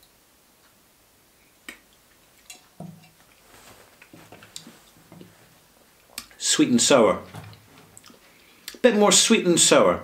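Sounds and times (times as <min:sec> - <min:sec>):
wet lip and tongue clicks: 0:01.6 - 0:02.7, 0:06.0 - 0:06.4.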